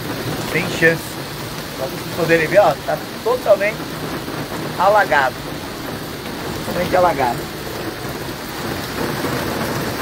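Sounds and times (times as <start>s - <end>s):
heavy rain on street: 0.0s - 10.0s.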